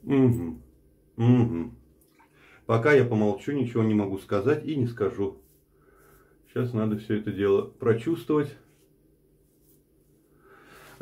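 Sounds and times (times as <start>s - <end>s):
faint low hum: 0.0s - 11.0s
faint soft noise: 1.9s - 11.0s.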